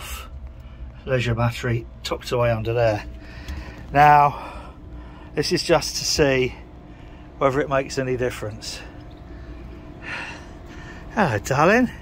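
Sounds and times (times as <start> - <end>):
low background hum: 0.0 - 12.0
person breathing near microphone: 3.1 - 5.4, 6.5 - 7.4, 8.8 - 11.2.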